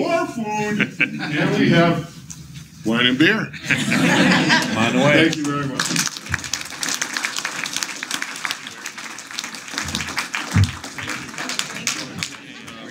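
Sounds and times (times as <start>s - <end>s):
audience applauding: 4.1s - 12.9s.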